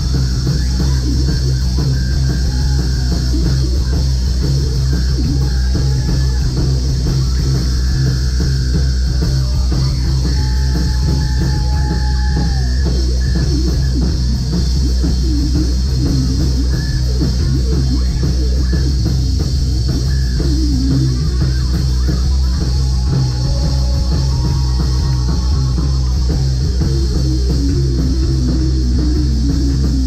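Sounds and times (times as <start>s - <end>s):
rock band playing live: 0.0s - 30.0s.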